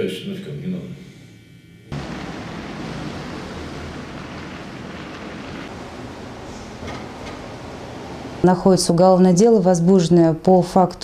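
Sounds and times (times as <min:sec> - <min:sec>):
low rumble: 0:01.9 - 0:08.5
rushing hiss: 0:02.0 - 0:08.4.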